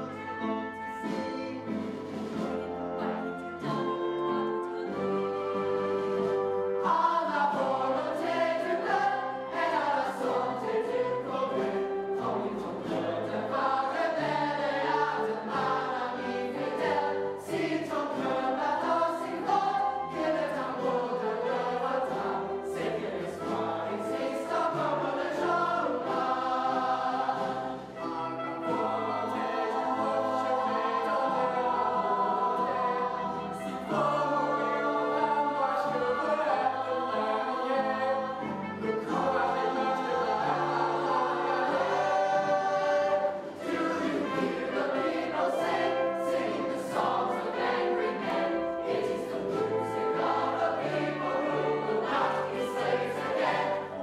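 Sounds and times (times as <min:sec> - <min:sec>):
instrumental accompaniment: 0:00.0 - 0:54.0
young voices singing in chorus: 0:06.8 - 0:54.0.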